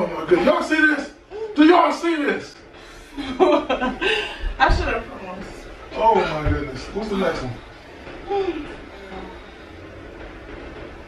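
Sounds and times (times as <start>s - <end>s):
low thump: 4.5s - 5.1s.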